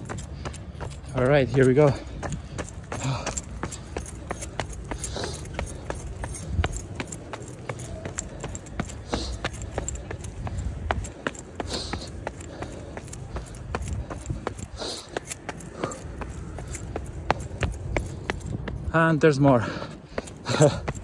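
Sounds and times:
person breathing hard: 0:00.0 - 0:18.8, 0:19.6 - 0:21.0
running footsteps on concrete stairs: 0:00.0 - 0:21.0.

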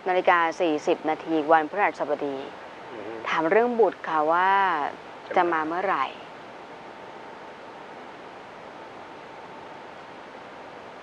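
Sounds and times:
steady hiss: 0:00.0 - 0:11.0.

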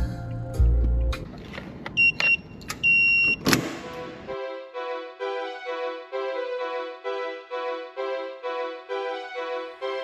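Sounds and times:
soft keyboard music: 0:00.0 - 0:01.3, 0:03.8 - 0:10.0.

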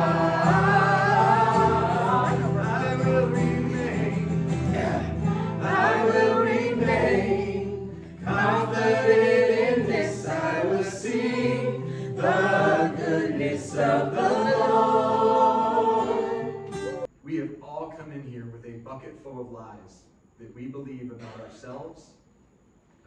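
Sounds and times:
group singing a worship song: 0:00.0 - 0:17.1.

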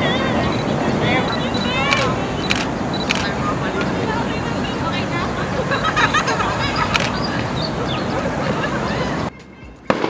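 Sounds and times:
group of people talking: 0:00.0 - 0:10.0
steady background noise: 0:00.0 - 0:10.0
sharp clicks: 0:01.8 - 0:03.4, 0:06.9 - 0:07.2.

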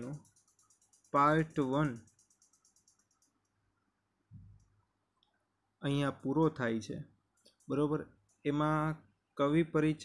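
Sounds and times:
man speaking: 0:01.2 - 0:02.0, 0:05.8 - 0:07.1, 0:07.7 - 0:10.0.

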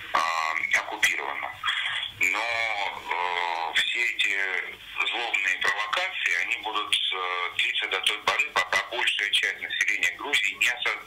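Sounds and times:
man speaking over telephone: 0:00.0 - 0:11.0.

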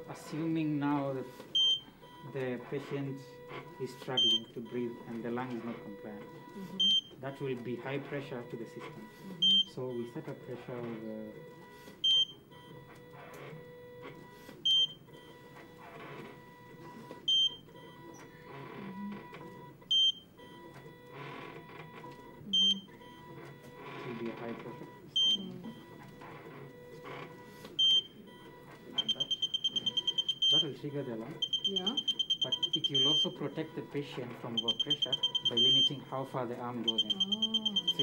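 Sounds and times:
rapid continuous alarm beeping: 0:00.2 - 0:12.8, 0:14.3 - 0:15.4, 0:17.2 - 0:18.2, 0:19.9 - 0:20.7, 0:21.8 - 0:38.0.

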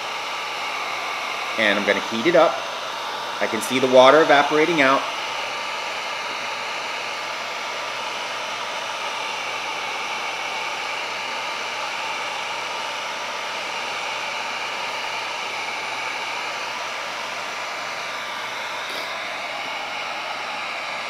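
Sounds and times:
heat gun blowing: 0:00.0 - 0:21.0.

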